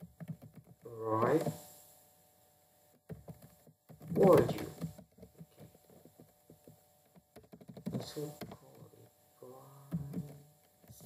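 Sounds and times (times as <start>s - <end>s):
keyboard typing: 0.0s - 1.6s, 3.1s - 8.9s
person humming: 9.4s - 11.0s.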